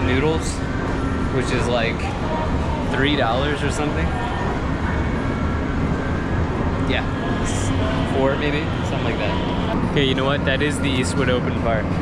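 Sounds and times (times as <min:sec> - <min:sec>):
low rumbling background noise: 0:00.0 - 0:12.0.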